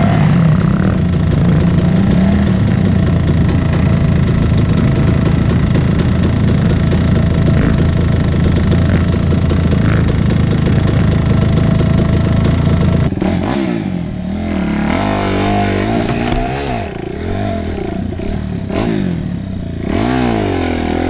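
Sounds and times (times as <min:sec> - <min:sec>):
dirt bike engine running steadily: 0:00.0 - 0:21.0
motocross engine revving: 0:00.0 - 0:21.0.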